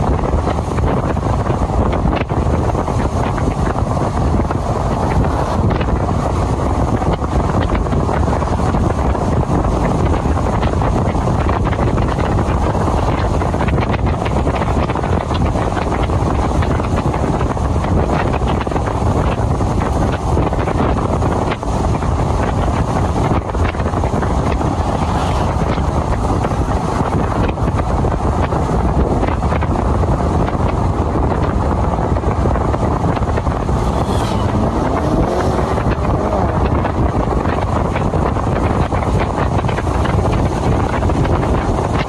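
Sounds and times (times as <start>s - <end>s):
low vehicle rumble: 0.0s - 42.0s
wind buffeting microphone: 0.0s - 42.0s.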